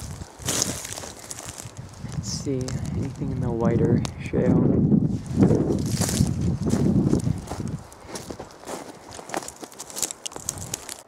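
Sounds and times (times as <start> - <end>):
footsteps crunching on shale: 0.0 - 11.0.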